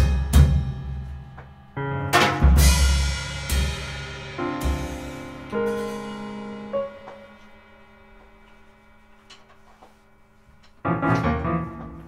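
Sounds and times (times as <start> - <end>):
drum kit playing: 0.0 - 9.7
electric keyboard chords: 1.8 - 7.8, 10.8 - 12.0
bass drum hit: 2.1 - 8.0
cymbal crash: 2.4 - 9.2.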